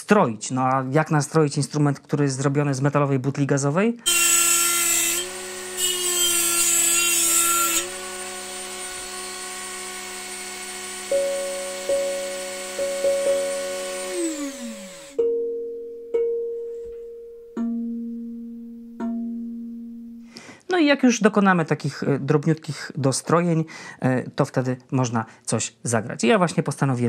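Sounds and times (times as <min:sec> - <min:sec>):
rotary tool motor whine: 0:04.1 - 0:15.2
mallet striking ringing metal tongues: 0:18.9 - 0:20.2.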